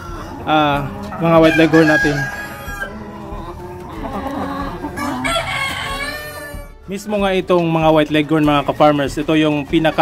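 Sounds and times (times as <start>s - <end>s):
rooster crowing: 0.0s - 3.3s, 4.3s - 6.7s
chickens clucking: 0.0s - 6.8s.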